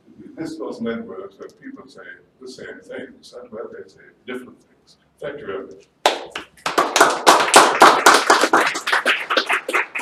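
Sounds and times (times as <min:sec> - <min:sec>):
audience applauding: 0:06.3 - 0:10.0.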